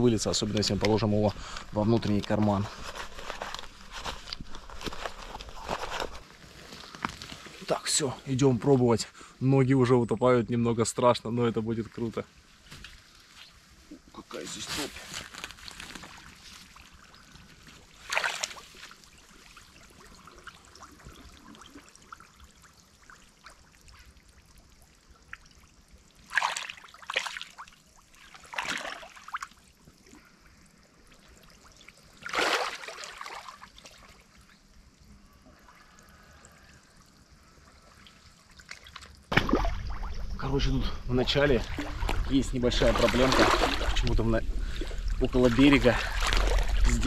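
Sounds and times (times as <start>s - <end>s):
boots splashing in shallow water: 18.0s - 19.0s, 26.3s - 27.7s, 38.7s - 40.1s, 41.6s - 47.0s.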